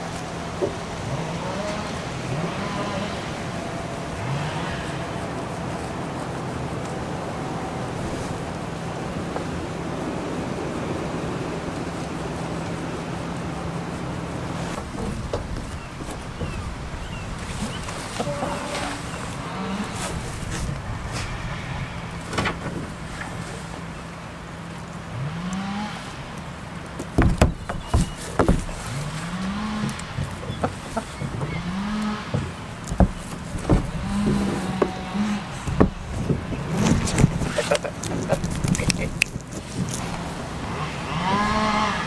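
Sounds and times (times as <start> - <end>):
steady low hum: 0.0 - 42.0
low farm animal calls: 0.3 - 8.8, 14.6 - 24.1, 27.5 - 39.3
sharp clicks and knocks: 14.7 - 19.4, 26.8 - 40.3.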